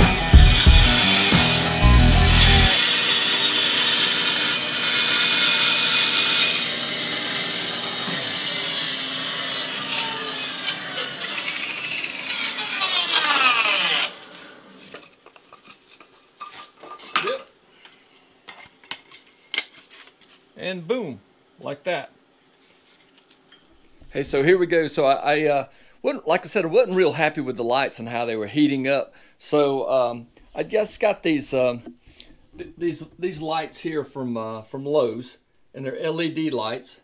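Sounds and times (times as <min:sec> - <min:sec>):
bandsaw cutting wood: 0:00.0 - 0:15.3.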